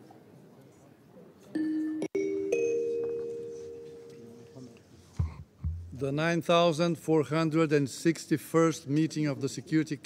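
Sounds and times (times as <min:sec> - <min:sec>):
two-note chime ringing: 0:01.6 - 0:04.8.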